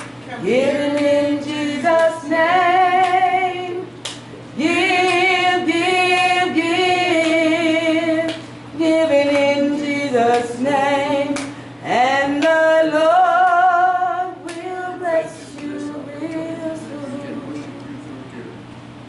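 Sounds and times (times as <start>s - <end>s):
woman singing a slow church song: 0.3s - 18.1s.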